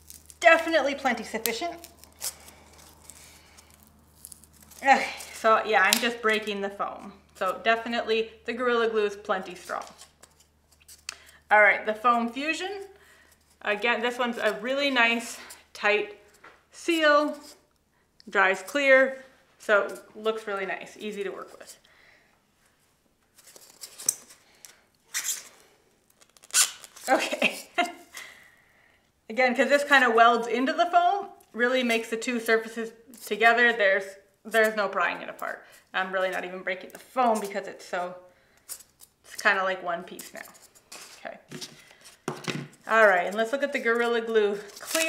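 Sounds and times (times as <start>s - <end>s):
scratchy crunch of foam: 0.0s - 5.4s.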